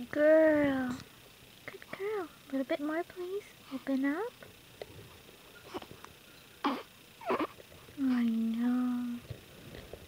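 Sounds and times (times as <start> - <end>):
baby fussing and grunting: 6.6 - 8.2.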